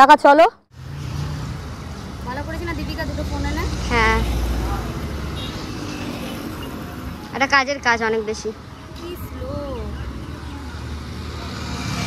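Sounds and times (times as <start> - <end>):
street traffic: 0.0 - 12.0
motorbike passing: 0.7 - 12.0.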